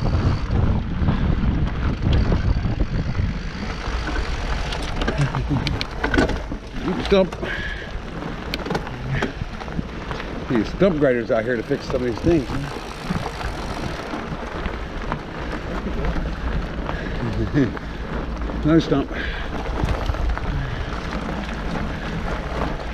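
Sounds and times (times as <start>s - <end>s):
bike tyres on dirt trail: 0.0s - 22.9s
wind rumbling on microphone: 0.0s - 22.9s.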